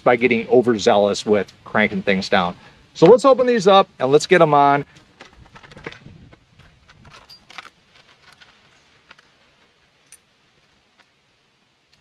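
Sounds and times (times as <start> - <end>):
small clicks and rustles of packaging: 4.8 - 11.2.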